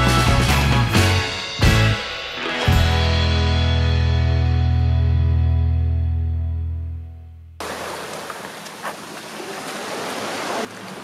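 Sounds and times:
small waves washing onto pebbles: 0:07.6 - 0:11.0.

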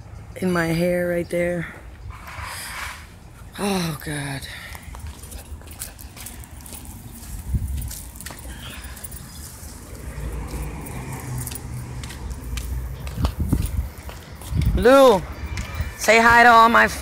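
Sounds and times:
wind rumble on microphone: 0:04.9 - 0:17.0.

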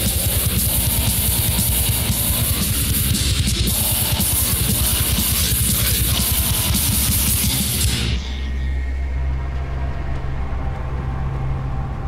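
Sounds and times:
distorted guitars: 0:00.0 - 0:12.0.

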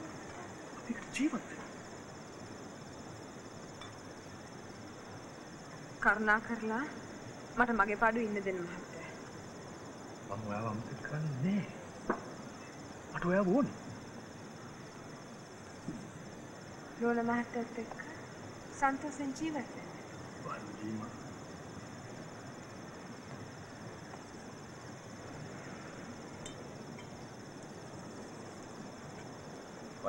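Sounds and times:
crickets chirping: 0:00.0 - 0:30.0
woman speaking: 0:06.0 - 0:07.0, 0:07.6 - 0:09.2, 0:17.0 - 0:18.2, 0:18.8 - 0:19.9
man speaking: 0:10.3 - 0:11.7, 0:13.2 - 0:13.8, 0:20.5 - 0:21.1.

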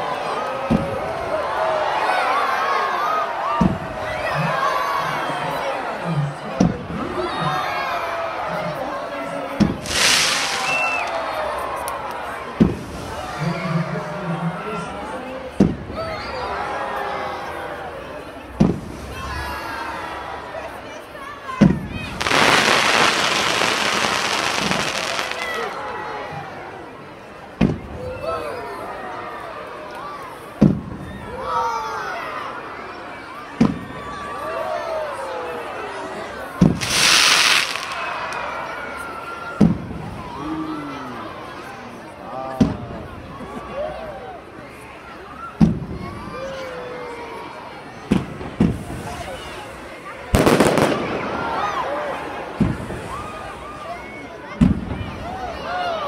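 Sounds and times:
fireworks crackling: 0:09.6 - 0:12.0, 0:21.8 - 0:25.9, 0:36.6 - 0:38.6, 0:48.2 - 0:53.6
crowd exclamations: 0:09.8 - 0:13.6, 0:19.1 - 0:26.7, 0:33.7 - 0:41.5, 0:50.3 - 0:56.0.

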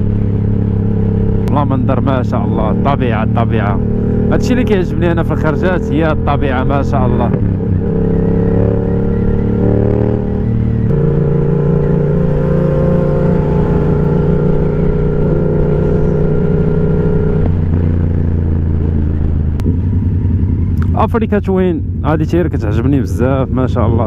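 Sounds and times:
motorcycle engine cruising: 0:00.0 - 0:24.0.

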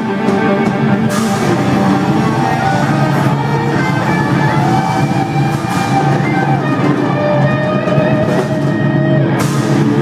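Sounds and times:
distorted electric guitars: 0:00.0 - 0:10.0
drum kit: 0:00.0 - 0:10.0
cymbal crash: 0:01.1 - 0:08.8, 0:09.4 - 0:10.0.

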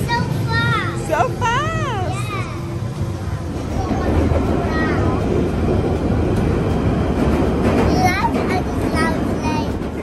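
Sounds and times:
underground train rumbling: 0:00.0 - 0:10.0.

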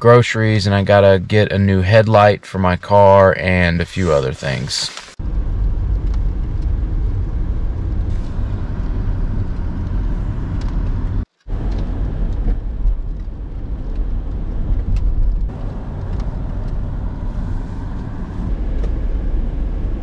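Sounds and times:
car road noise rumble: 0:02.9 - 0:20.0.

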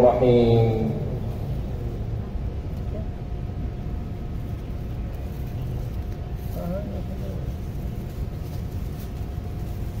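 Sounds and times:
crowd low rumble: 0:00.0 - 0:10.0.

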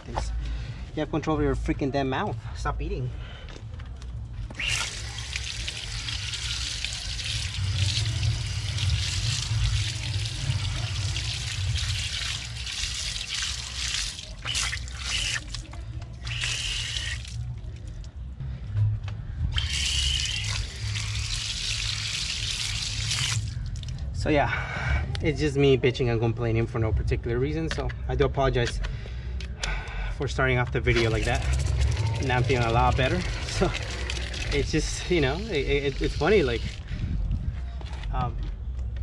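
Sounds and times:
pressure washer spraying water: 0:16.2 - 0:17.4.

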